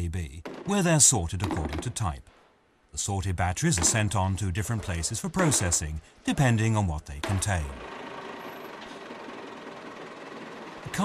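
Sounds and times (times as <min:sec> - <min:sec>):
vehicle engine idling: 0:07.2 - 0:11.0.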